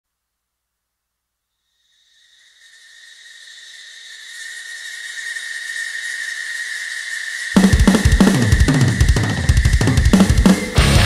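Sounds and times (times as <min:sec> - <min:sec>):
hissing whistling swell: 0:02.1 - 0:10.9
drum kit and band: 0:07.6 - 0:11.0.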